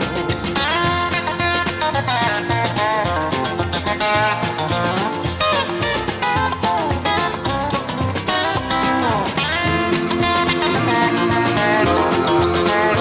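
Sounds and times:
country band with sliding guitar: 0.0s - 13.0s.

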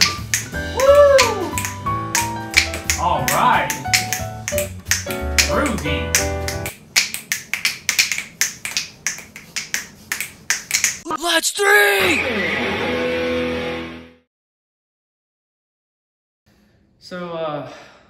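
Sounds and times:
upbeat music with bass beat: 0.0s - 6.7s
finger snapping: 0.0s - 11.0s.

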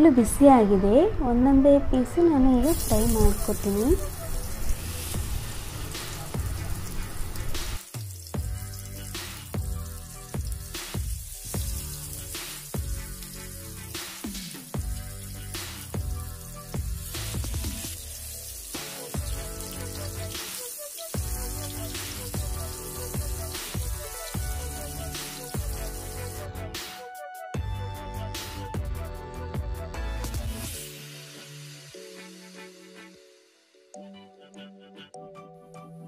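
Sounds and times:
fish sizzling in hot oil: 2.7s - 26.6s
background music with beat: 3.1s - 36.0s.

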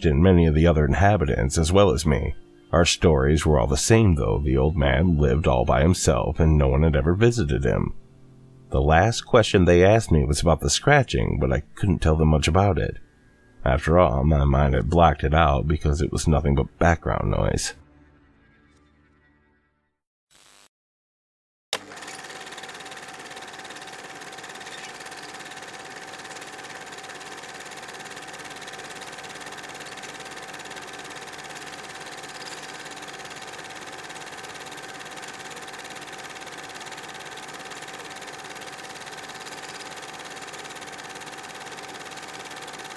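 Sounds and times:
small motor drone: 21.8s - 42.9s.

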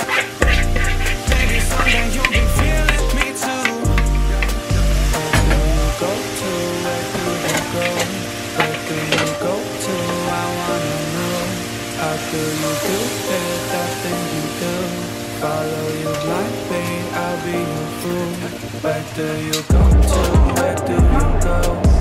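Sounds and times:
steak sizzling in a frying pan: 0.0s - 2.4s
utensil clicking and scraping: 0.0s - 4.6s
background music with bass: 0.0s - 9.6s, 16.4s - 22.0s
deep bass hit: 0.4s - 3.2s, 3.9s - 6.0s, 19.7s - 22.0s.

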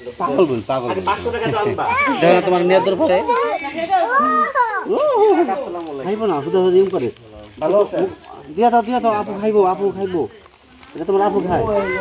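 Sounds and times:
young children talking: 1.4s - 5.6s, 11.4s - 12.0s.

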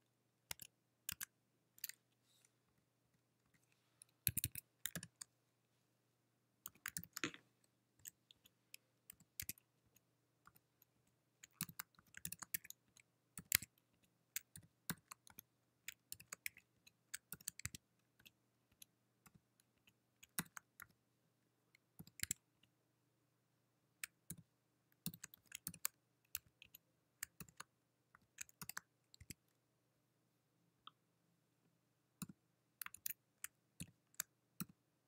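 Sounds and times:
faint keyboard typing: 0.0s - 5.4s, 6.6s - 21.0s, 21.6s - 22.8s, 23.9s - 29.6s, 30.8s - 34.9s.

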